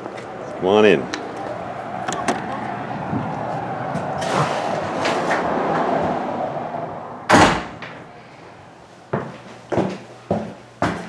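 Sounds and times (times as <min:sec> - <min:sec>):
street noise hiss: 0:00.0 - 0:11.0
door thudding shut: 0:07.3 - 0:08.0.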